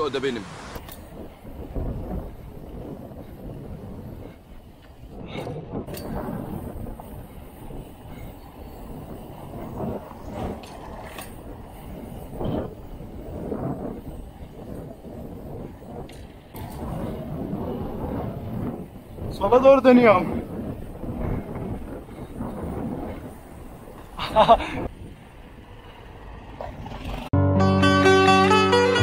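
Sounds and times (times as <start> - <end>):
wind on microphone: 0.0 - 25.9
bike tyre rumble on bricks: 0.9 - 27.3.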